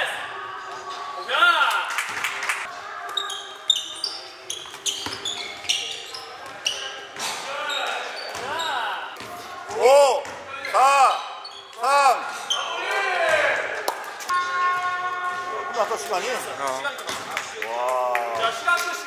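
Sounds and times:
sneaker squeaks: 3.0s - 9.6s, 10.2s - 13.0s.

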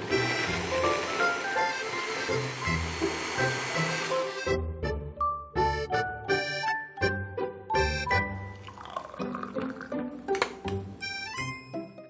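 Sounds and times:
hand blender running: 0.0s - 4.6s.

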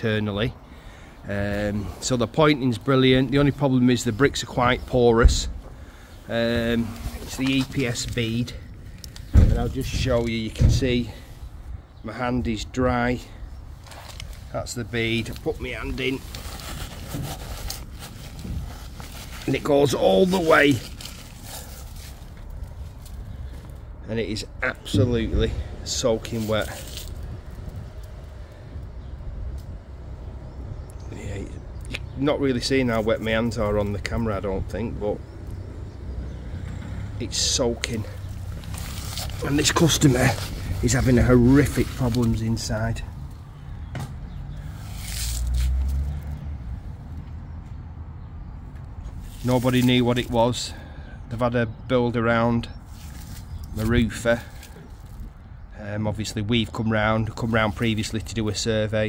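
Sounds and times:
low outdoor background rumble: 0.0s - 59.0s
hand rustling through insulation beads: 13.8s - 23.8s, 26.0s - 27.3s, 37.8s - 43.0s, 49.2s - 50.6s, 52.9s - 55.2s
low rumble: 24.5s - 30.9s.

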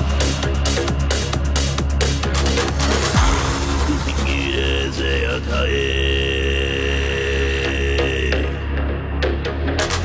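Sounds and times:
deep bass: 0.0s - 10.0s.

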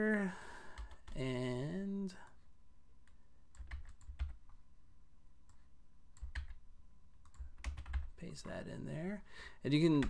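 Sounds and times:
computer keyboard keystrokes: 3.5s - 4.4s, 6.2s - 6.6s, 7.2s - 8.1s.

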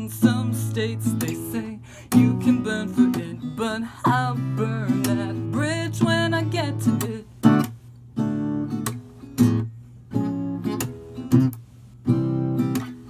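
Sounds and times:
person singing: 0.0s - 7.3s
acoustic guitar strumming: 0.0s - 13.0s.

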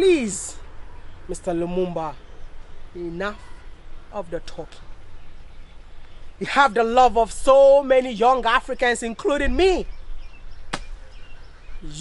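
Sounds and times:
man talking: 3.0s - 3.4s.

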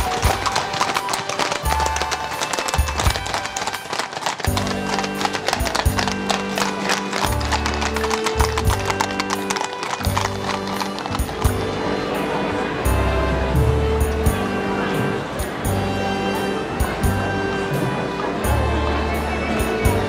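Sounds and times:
horses hooves on wet tarmac: 0.0s - 14.4s
music with long held notes: 0.0s - 20.0s.

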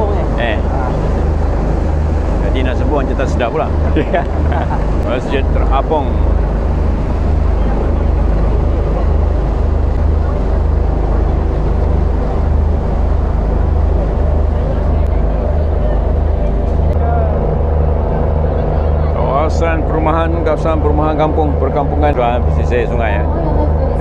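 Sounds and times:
boat engine droning: 0.0s - 24.0s.

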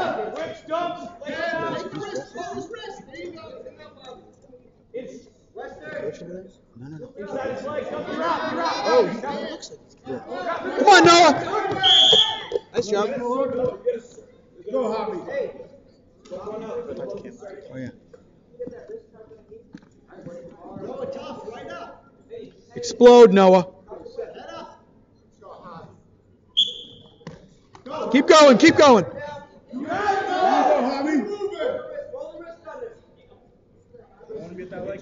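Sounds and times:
shouting voices echoing: 10.4s - 12.6s, 27.9s - 31.3s
referee's whistle: 11.7s - 12.6s, 26.6s - 27.2s
loud yell: 29.7s - 31.2s.

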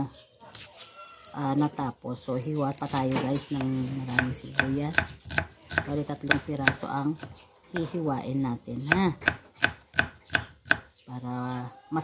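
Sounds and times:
knife chopping on wooden board: 3.5s - 7.9s, 8.8s - 10.9s.

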